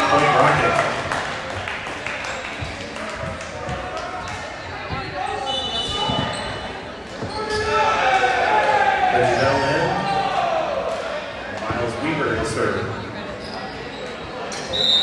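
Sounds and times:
players calling out in gymnasium: 2.4 - 15.0
ball bouncing on hardwood court: 5.8 - 7.7.

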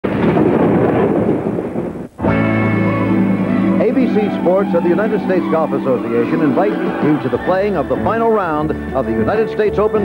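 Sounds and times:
loud dense rumbling: 0.0 - 8.3.

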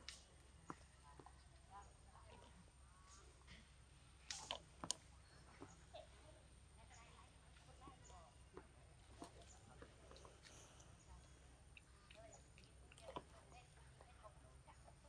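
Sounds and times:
faint outdoor ambience: 0.0 - 15.0.

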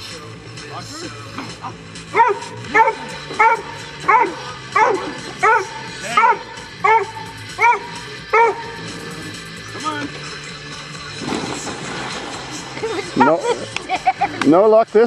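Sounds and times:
dog barking: 2.1 - 8.8.

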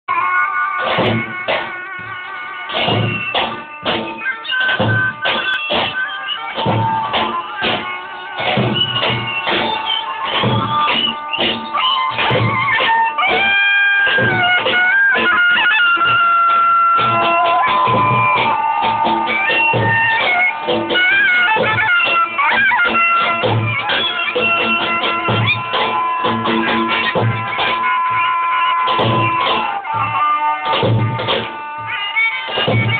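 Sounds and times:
shawms playing shrill melody: 0.1 - 32.9
large drum beating: 0.9 - 4.2, 6.6 - 13.4, 17.0 - 21.0.

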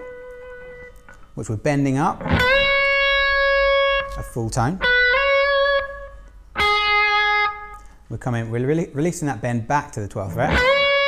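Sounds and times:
electric guitar note: 2.1 - 7.9, 10.3 - 11.0.

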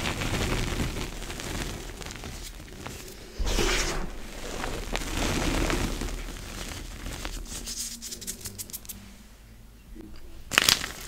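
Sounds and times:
hands crushing powdery chalk: 0.0 - 9.1, 10.5 - 11.0.

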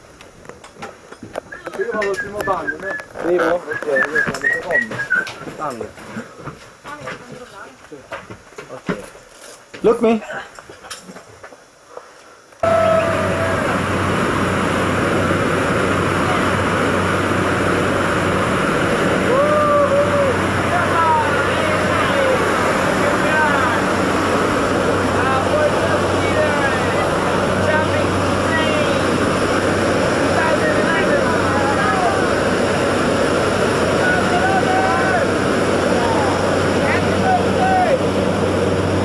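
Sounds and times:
voices: 1.5 - 6.3, 12.6 - 14.3, 15.8 - 39.0
knocks and footfalls on cabin floor: 8.1 - 9.9
low hum: 12.6 - 39.0
plane engine and propeller: 12.6 - 39.0.

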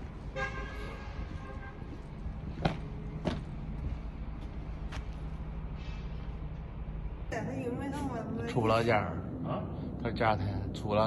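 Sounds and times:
vehicle horn: 0.3 - 2.0.

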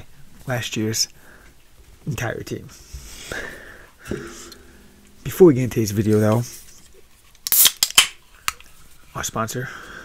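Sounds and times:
can sharp click: 7.4 - 8.6.

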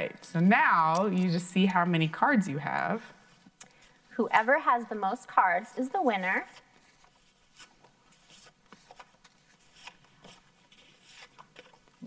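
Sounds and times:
paper cards rustling: 6.0 - 12.0
paper cards ticking: 6.4 - 12.0.

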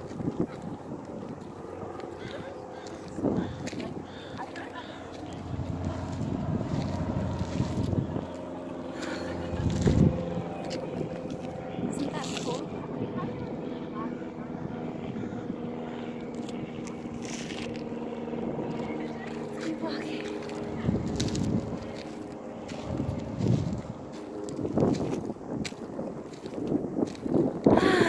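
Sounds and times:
engine drone: 0.0 - 28.0
wind buffeting microphone: 0.0 - 28.0.

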